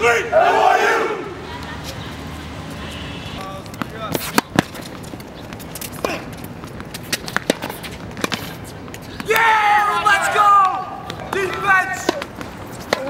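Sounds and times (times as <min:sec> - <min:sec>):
young men talking: 0:03.3 - 0:04.7, 0:09.1 - 0:13.0.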